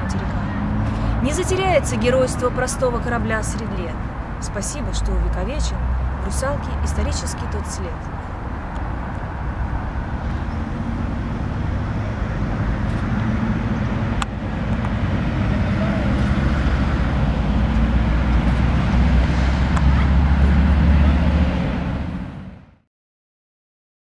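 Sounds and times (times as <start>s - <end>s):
rumble of passing vehicles: 0.0s - 22.9s.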